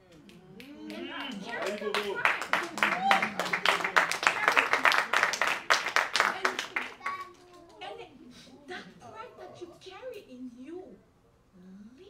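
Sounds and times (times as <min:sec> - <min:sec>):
audience clapping: 0:00.1 - 0:07.8
voices calling out: 0:00.4 - 0:07.6.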